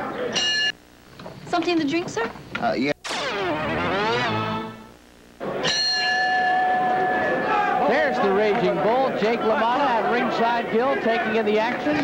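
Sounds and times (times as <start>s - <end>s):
boxing ring bell: 0.4s - 0.8s, 5.6s - 6.9s
garbled broadcast audio sliding down: 2.9s - 5.4s
voices: 6.5s - 12.0s.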